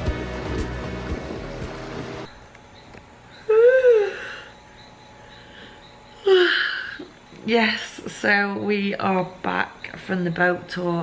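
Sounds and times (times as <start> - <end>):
background music: 0.0 - 2.3
woman yawning loudly: 3.5 - 4.5.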